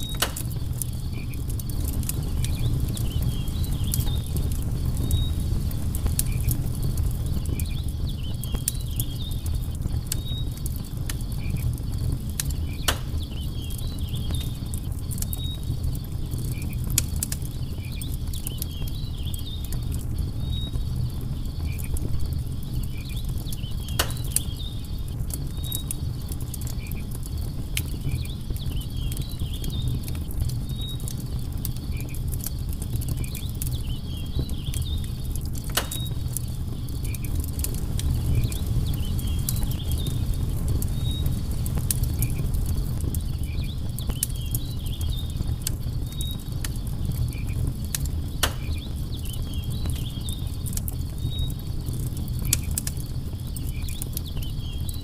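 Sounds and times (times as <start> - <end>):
campfire crackling and popping: 0.0 - 55.0
insects chirping: 0.0 - 55.0.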